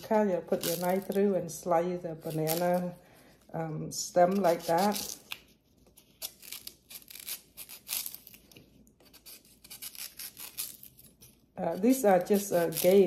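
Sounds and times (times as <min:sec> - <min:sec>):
knife cutting and tearing leaf: 0:00.0 - 0:01.4, 0:02.1 - 0:02.9, 0:04.0 - 0:13.0.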